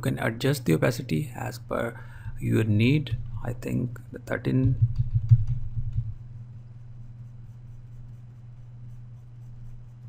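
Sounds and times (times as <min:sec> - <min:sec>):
steady low hum: 0:00.0 - 0:10.0
low muffled bumps: 0:02.3 - 0:03.8, 0:04.5 - 0:06.2.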